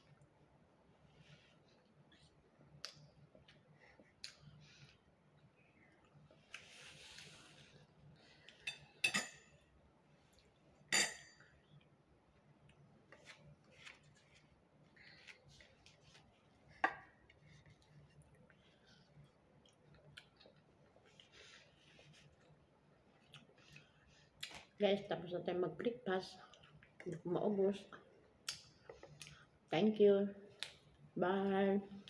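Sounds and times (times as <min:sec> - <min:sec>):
tableware clinking: 0:08.7 - 0:09.5, 0:10.9 - 0:11.4.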